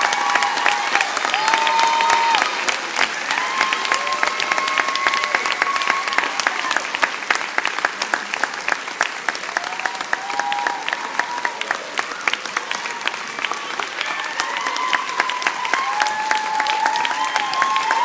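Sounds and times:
long held cheers: 0.0 - 7.4, 9.3 - 18.0
audience clapping: 0.0 - 18.0.

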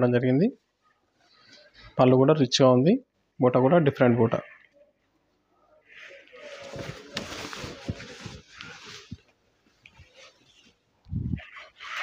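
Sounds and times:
silk fabric rustling: 6.0 - 12.0.

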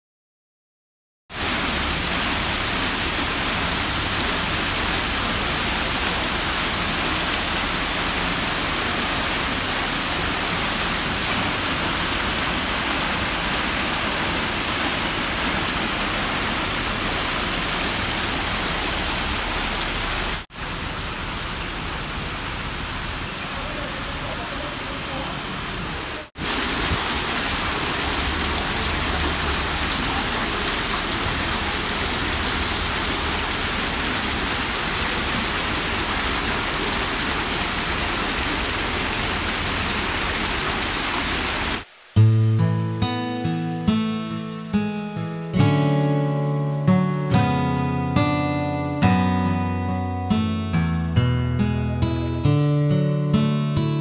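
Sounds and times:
water jets bubbling: 1.3 - 41.9
fountain water cascading and splashing: 1.3 - 42.3.

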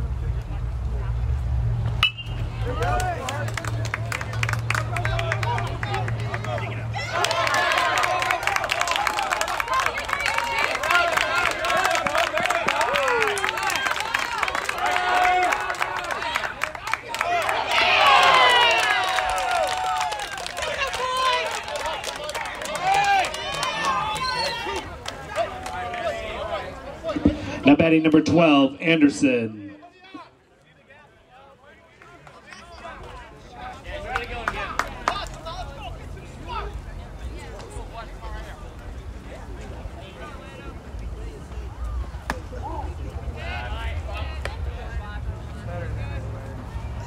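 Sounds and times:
crowd shouting and cheering: 2.0 - 38.6, 41.5 - 47.0
people calling out and chattering: 20.4 - 47.0.

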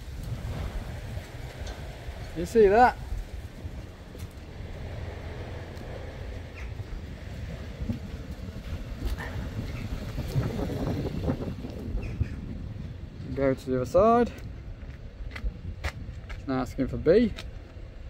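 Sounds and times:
wind rumbling on microphone: 0.0 - 18.0.

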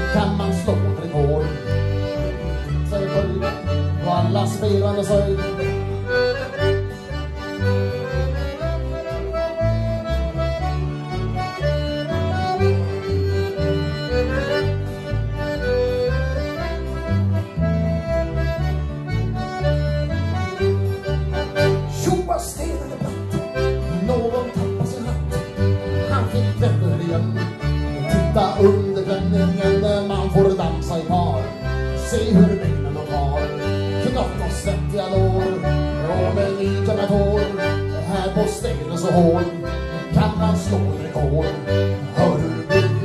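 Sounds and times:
accordions playing melody: 0.0 - 43.0
fiddles playing: 0.0 - 43.0
guitar and bass rhythm: 0.0 - 43.0.

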